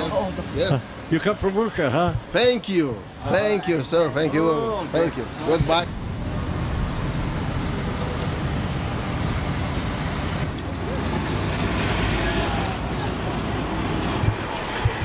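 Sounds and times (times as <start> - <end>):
cars driving past: 2.8 - 15.0.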